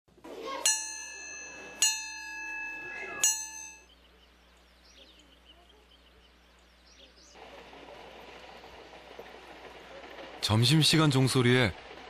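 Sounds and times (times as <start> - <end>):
school bell ringing: 0.4 - 3.9.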